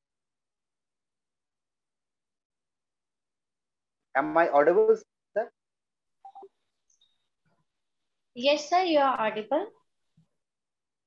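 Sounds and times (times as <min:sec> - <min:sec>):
man speaking over video call: 0:04.1 - 0:05.6.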